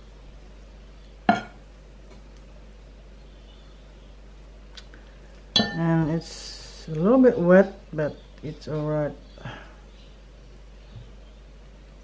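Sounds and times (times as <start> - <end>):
steady low hum: 0.0 - 12.0
metal spoon clinking on dish: 5.6 - 5.9.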